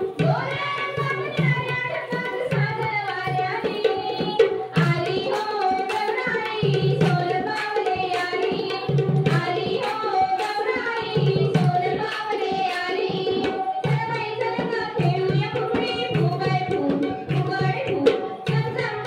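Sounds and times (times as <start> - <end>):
hand drum beat: 0.0 - 19.0
woman singing folk song: 0.3 - 19.0.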